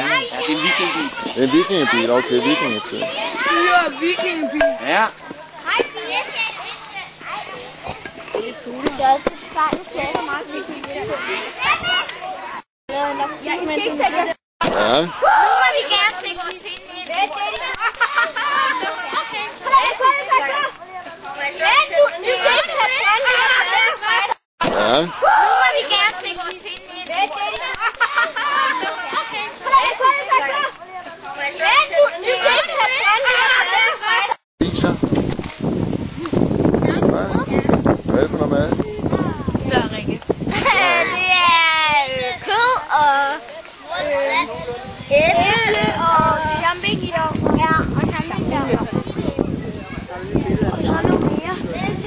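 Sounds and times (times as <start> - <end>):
children talking and calling out: 0.0 - 14.4, 15.0 - 24.4, 25.1 - 34.4, 36.7 - 38.0, 38.7 - 52.0.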